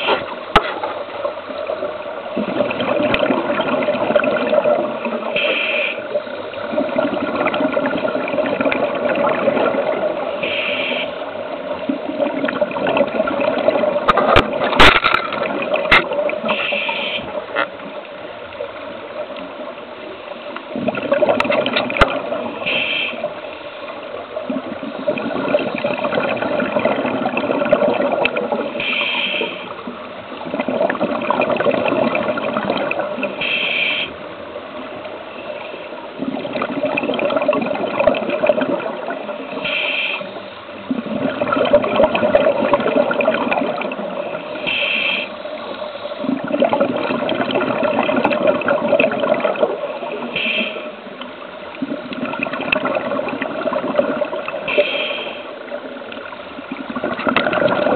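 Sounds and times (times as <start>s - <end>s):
water rushing and gurgling: 0.0s - 57.9s.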